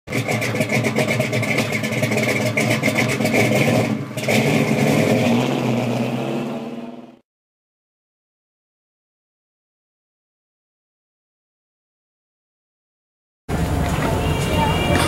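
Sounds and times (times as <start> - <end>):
raspy car engine revving: 0.1 - 7.2, 13.5 - 15.0.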